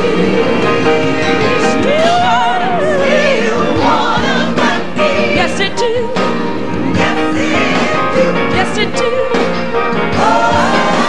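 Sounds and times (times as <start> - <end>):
gospel singing with choir and band: 0.0 - 11.0.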